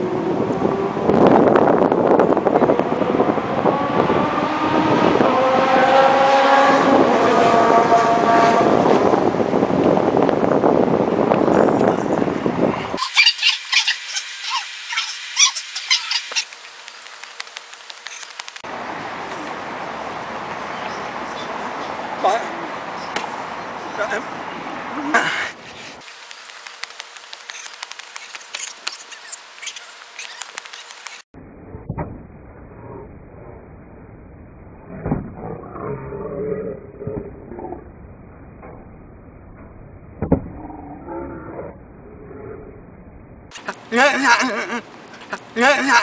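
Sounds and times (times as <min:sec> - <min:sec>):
wind rumble on microphone: 0:00.0 - 0:13.0
quick high-pitched chirps: 0:13.0 - 0:18.6, 0:26.0 - 0:31.2
man yelling: 0:43.9 - 0:44.5, 0:45.5 - 0:46.0.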